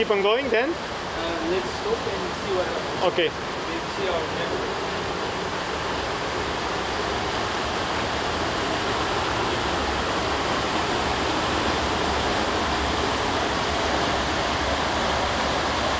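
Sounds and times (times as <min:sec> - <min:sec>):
water rushing over gravel: 0:00.0 - 0:15.9.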